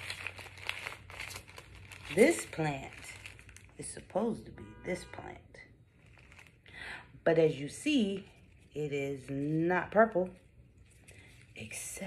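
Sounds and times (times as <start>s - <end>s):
paper packets rustling and crinkling: 0.0s - 4.0s, 5.9s - 6.8s, 10.2s - 12.0s.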